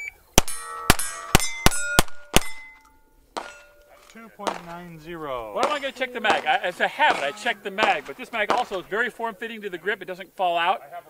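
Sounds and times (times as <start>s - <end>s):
pistol shots: 0.4s - 2.8s, 3.4s - 4.9s, 5.6s - 9.1s
steel plate ringing: 0.4s - 4.9s, 5.6s - 9.0s.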